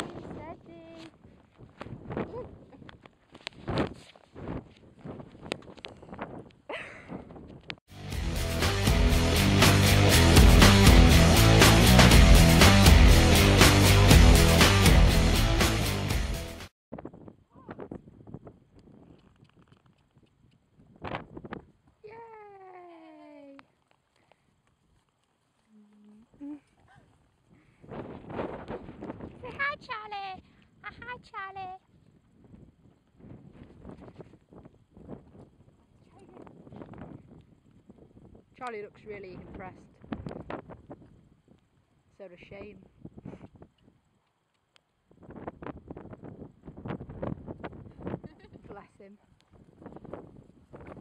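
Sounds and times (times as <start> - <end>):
wind buffeting microphone: 0.0 - 7.8, 16.9 - 22.0, 26.9 - 41.8, 45.1 - 51.0.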